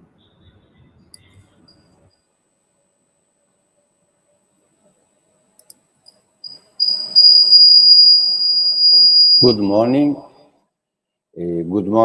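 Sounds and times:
high-pitched whine: 0:06.4 - 0:10.3.

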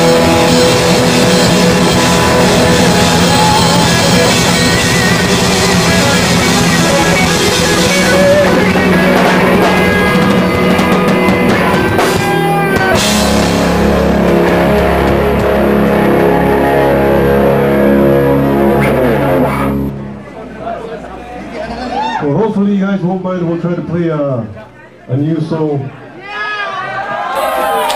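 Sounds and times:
live rock band playing: 0:00.0 - 0:20.9.

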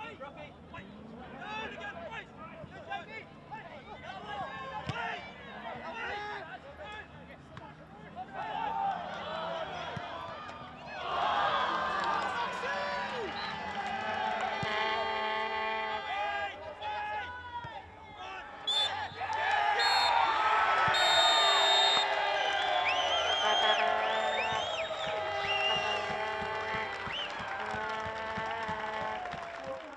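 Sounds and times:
players shouting: 0:08.3 - 0:29.9
referee's whistle blast: 0:18.7 - 0:26.5.

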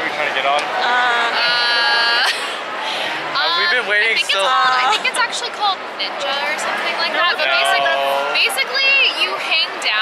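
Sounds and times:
people talking: 0:00.2 - 0:02.4, 0:03.4 - 0:10.0.

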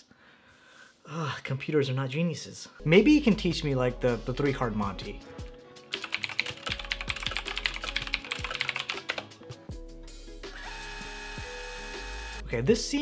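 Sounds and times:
typing on computer keyboard: 0:05.9 - 0:09.3.

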